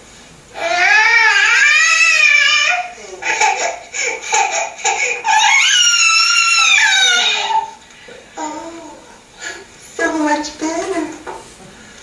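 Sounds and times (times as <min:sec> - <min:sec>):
infant crying: 0:00.6 - 0:07.8.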